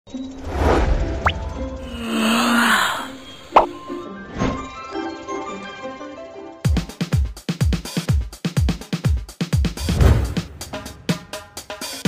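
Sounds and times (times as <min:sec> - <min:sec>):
background music: 0:01.0 - 0:08.8.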